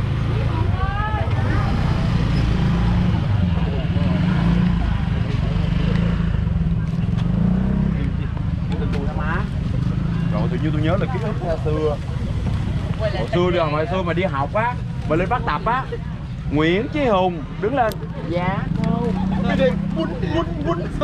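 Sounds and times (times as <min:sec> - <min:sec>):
motor scooter engines rumbling: 0:00.0 - 0:21.0
voices talking: 0:00.0 - 0:21.0.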